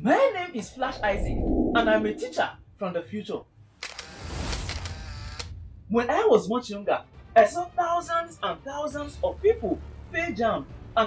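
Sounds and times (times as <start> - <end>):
low rumble: 0.6 - 2.5.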